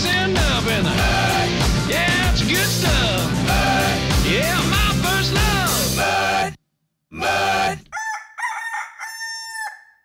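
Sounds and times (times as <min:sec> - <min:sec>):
rock song: 0:00.0 - 0:06.5
rooster crowing: 0:07.9 - 0:10.0.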